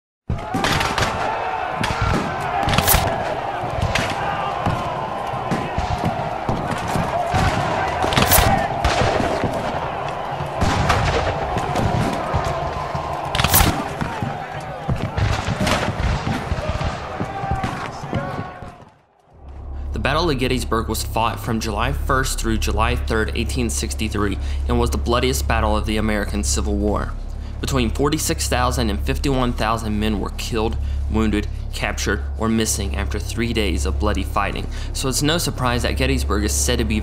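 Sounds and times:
rifle fire: 0:00.4 - 0:04.8, 0:07.2 - 0:14.2, 0:15.1 - 0:18.0
sharp loud gunshots: 0:00.4 - 0:18.1
men yelling: 0:00.4 - 0:18.9.

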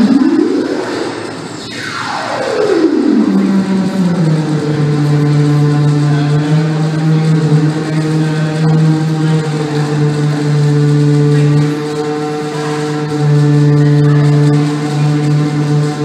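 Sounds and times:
downward pitch sweep: 0:00.0 - 0:16.0
low electronic drone: 0:00.0 - 0:16.0.

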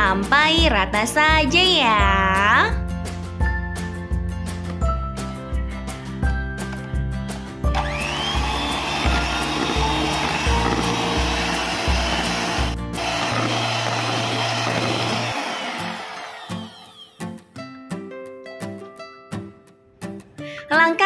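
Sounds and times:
electric hand mixer whirring: 0:07.7 - 0:17.2.

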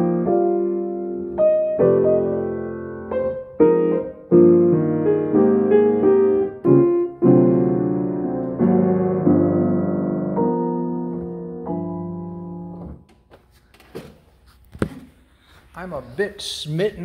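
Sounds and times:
grand piano chords: 0:00.0 - 0:13.1.

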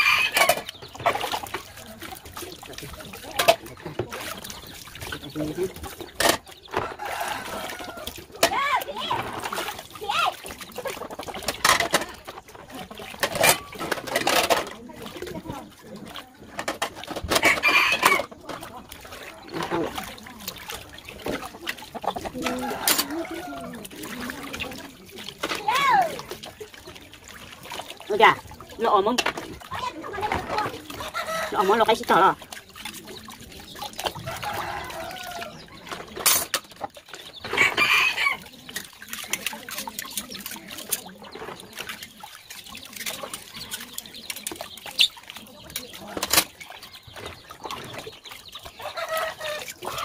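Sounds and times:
chickens clucking: 0:00.0 - 0:50.0
water pouring from hose into tub: 0:00.0 - 0:50.0.

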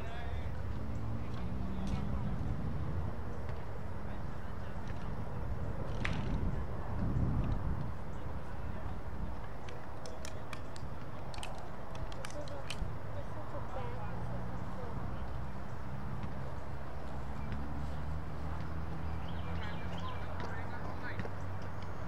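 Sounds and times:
faint distant voices: 0:00.0 - 0:22.0.

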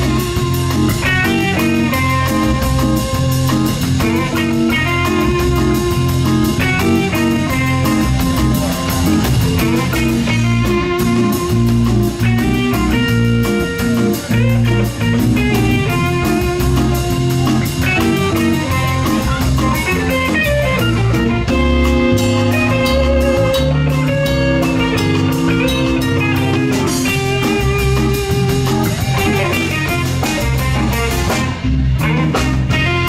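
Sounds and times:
electric guitar lines: 0:00.0 - 0:33.0
live funk band playing: 0:00.0 - 0:33.0.

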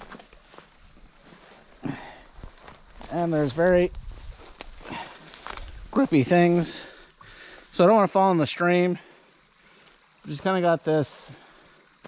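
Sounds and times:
footsteps through dry grass: 0:00.0 - 0:08.2
stems crackling underfoot: 0:00.0 - 0:12.0.

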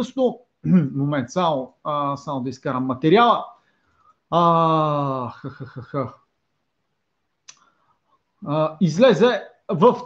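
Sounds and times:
man's voice: 0:04.3 - 0:06.2.

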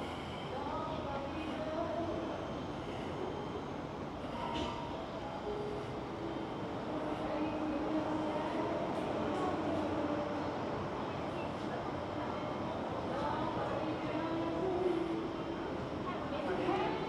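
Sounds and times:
urban rumble and hiss: 0:00.0 - 0:17.0.

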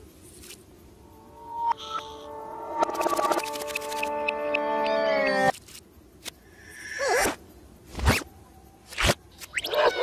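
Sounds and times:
cartoon gliding squeak: 0:09.0 - 0:10.0.

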